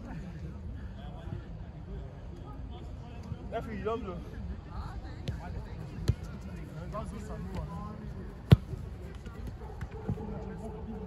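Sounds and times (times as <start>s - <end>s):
football kicks on artificial turf: 8.4s - 10.3s.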